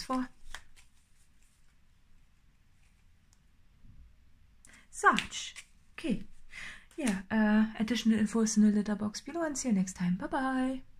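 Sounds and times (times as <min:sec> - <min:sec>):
tarot cards clicking: 0:00.0 - 0:01.6, 0:05.0 - 0:07.2.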